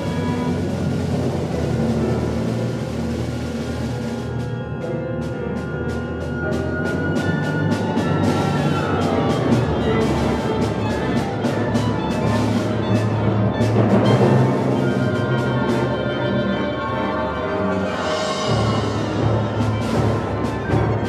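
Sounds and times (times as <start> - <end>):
repeated percussion strikes: 0.0 - 16.3
chamber ensemble playing: 0.0 - 21.0.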